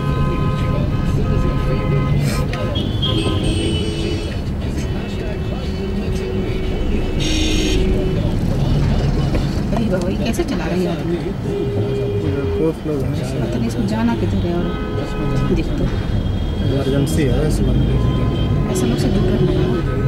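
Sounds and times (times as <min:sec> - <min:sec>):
car radio music and talk: 0:00.0 - 0:20.0
surrounding traffic: 0:00.0 - 0:20.0
car engine rumble: 0:04.3 - 0:11.9.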